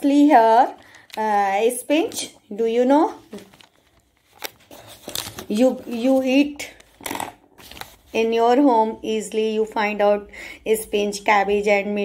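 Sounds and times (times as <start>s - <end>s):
person speaking: 0.0s - 3.7s, 5.4s - 7.0s
paper rustling: 3.1s - 7.0s, 7.6s - 8.4s.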